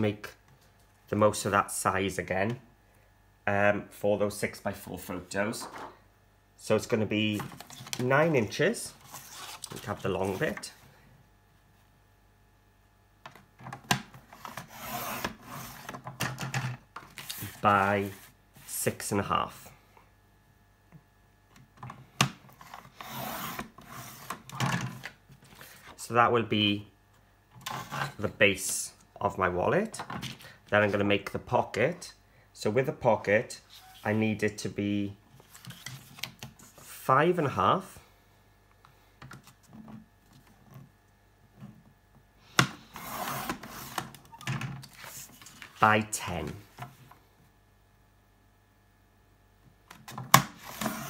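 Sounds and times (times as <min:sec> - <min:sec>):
paper trimmer blade sliding: 0:50.6 - 0:51.0.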